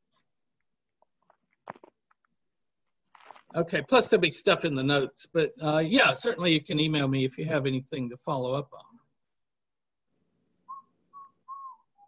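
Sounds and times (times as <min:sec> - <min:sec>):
faint whistling: 0:10.6 - 0:12.0.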